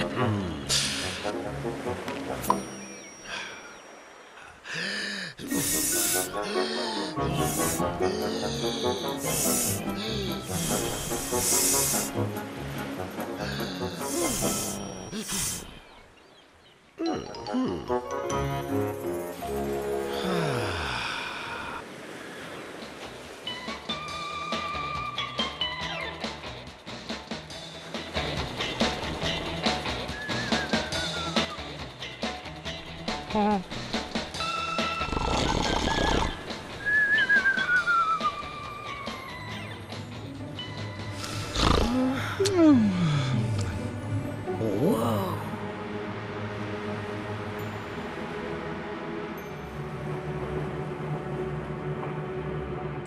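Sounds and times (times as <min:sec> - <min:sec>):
loud high hissing burst: 0:05.5 - 0:06.4, 0:07.2 - 0:07.9, 0:09.2 - 0:09.9, 0:10.5 - 0:12.1, 0:14.0 - 0:15.6
wavering whistle gliding down: 0:36.8 - 0:39.6.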